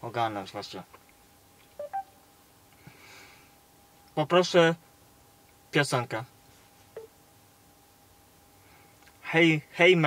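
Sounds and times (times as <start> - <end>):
two-note rising electronic beep: 1.8 - 2.1.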